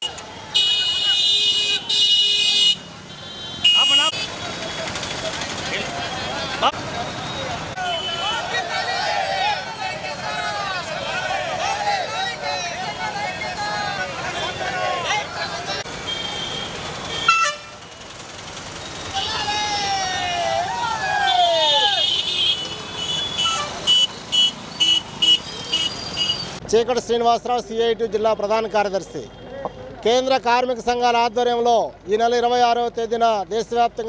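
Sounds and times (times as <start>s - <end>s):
motorcycle horns honking: 0.0s - 5.6s, 6.2s - 8.5s, 16.0s - 18.0s, 21.4s - 26.6s
street traffic: 0.0s - 34.0s
voices: 3.7s - 16.4s, 19.0s - 24.4s.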